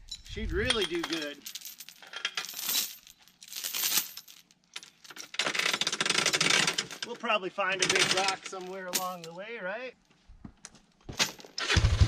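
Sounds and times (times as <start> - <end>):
steel chain links clinking: 0.0 - 7.2, 7.8 - 9.4.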